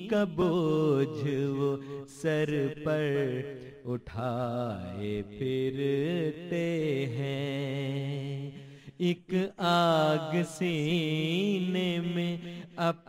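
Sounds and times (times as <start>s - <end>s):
man chanting: 0.0s - 13.0s.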